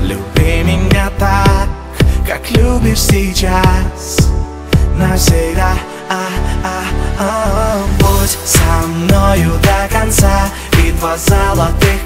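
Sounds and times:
synth and bass chords: 0.0s - 12.0s.

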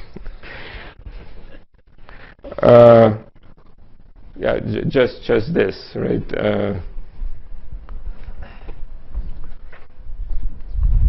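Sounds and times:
footsteps walking: 7.1s - 10.7s.

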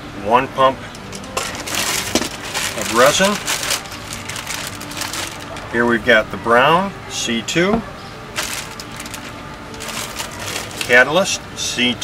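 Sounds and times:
plastic bottles clicking and rustling: 1.1s - 5.7s, 8.4s - 11.0s.

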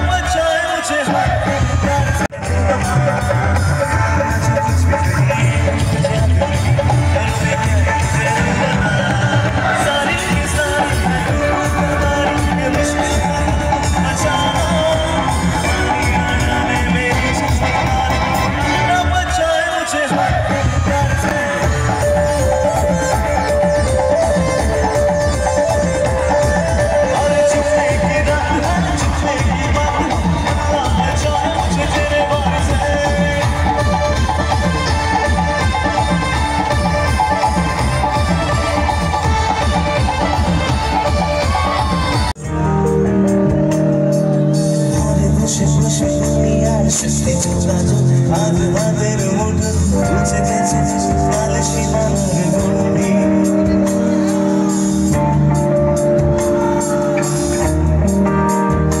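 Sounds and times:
crowd: 0.0s - 59.0s
live band dance music: 0.0s - 59.0s
person singing: 0.0s - 59.0s.

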